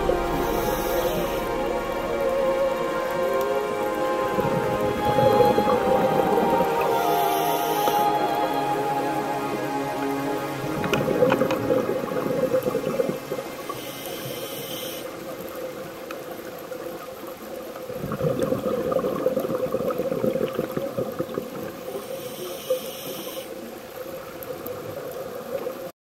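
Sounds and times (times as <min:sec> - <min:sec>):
regulator inhalation hiss: 0:00.0 - 0:03.2, 0:04.5 - 0:10.5, 0:13.6 - 0:15.2, 0:22.0 - 0:23.6
bubbling exhale: 0:00.0 - 0:03.3, 0:17.9 - 0:23.6
steady hum: 0:00.0 - 0:14.7.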